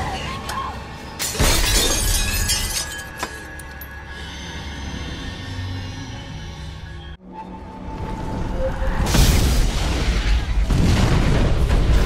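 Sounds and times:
tense orchestral score: 0:00.0 - 0:01.6, 0:02.9 - 0:12.0
glass shattering: 0:01.2 - 0:03.6
glass shards tinkling: 0:01.3 - 0:03.8.

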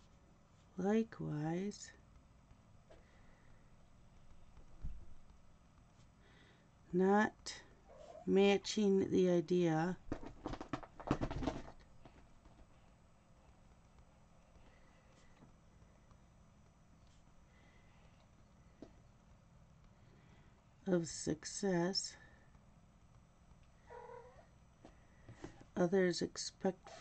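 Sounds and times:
cat meowing: 0:23.9 - 0:24.5.

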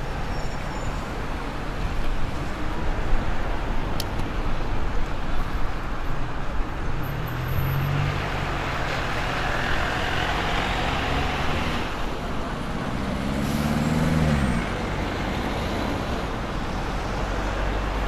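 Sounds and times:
bus moving slowly: 0:00.0 - 0:18.0
cars passing close by: 0:06.8 - 0:18.0.

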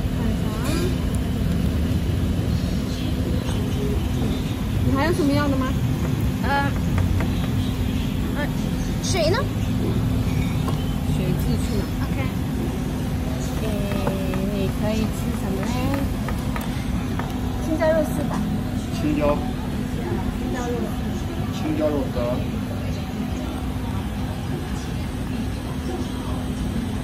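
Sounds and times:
indistinct chatter: 0:00.0 - 0:27.0
road traffic rumble: 0:00.0 - 0:27.0.

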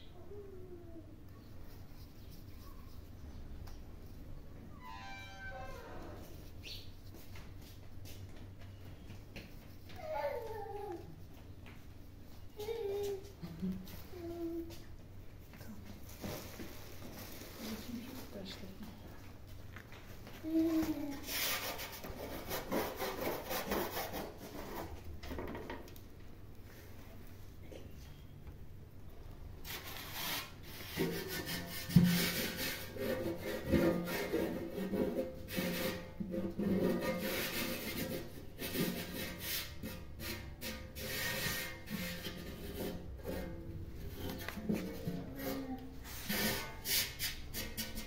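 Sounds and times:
dry rubbing and scraping: 0:21.2 - 0:25.1, 0:29.6 - 0:48.0.

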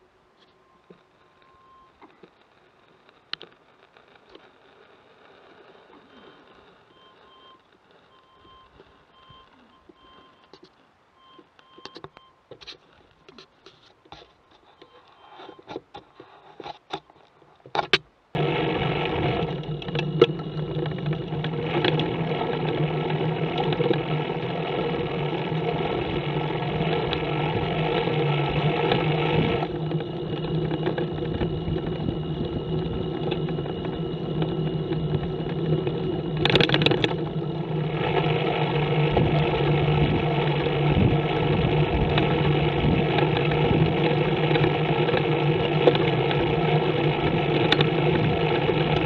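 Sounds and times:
low road noise: 0:00.0 - 0:49.0
trike engine running: 0:18.4 - 0:49.0.

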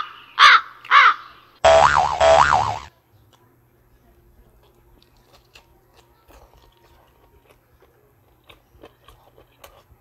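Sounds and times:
crow cawing: 0:00.0 - 0:01.4
comic wobbling tone: 0:01.6 - 0:02.9.

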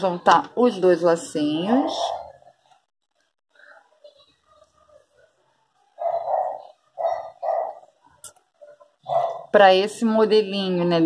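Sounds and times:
dog barking: 0:06.0 - 0:07.9, 0:09.1 - 0:09.5.

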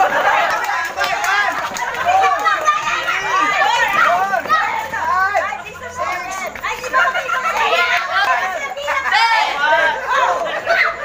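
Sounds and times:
children and adults shouting and cheering: 0:00.0 - 0:11.0.

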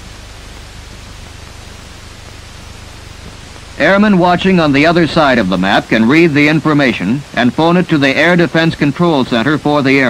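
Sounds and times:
low hum: 0:00.0 - 0:07.9
film soundtrack hiss: 0:00.0 - 0:10.0
man narrating: 0:03.8 - 0:10.0.

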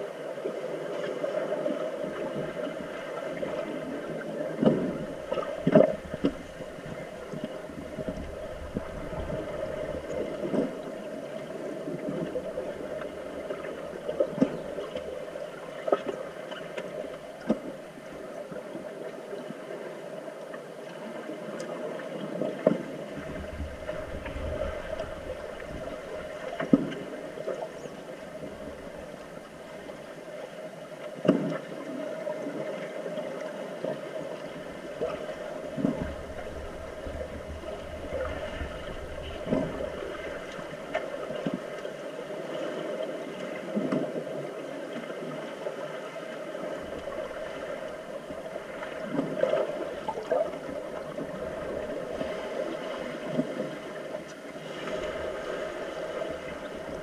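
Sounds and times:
muffled underwater rush: 0:00.0 - 0:57.0.

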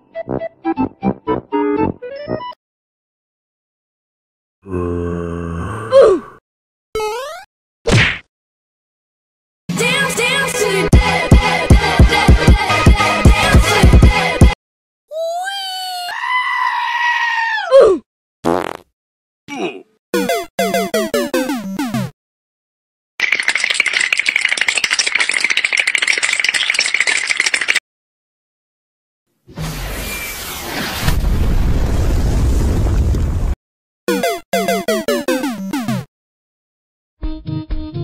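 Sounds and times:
long pitched wailing cry: 0:15.2 - 0:17.8
explosion blast: 0:30.9 - 0:33.6.

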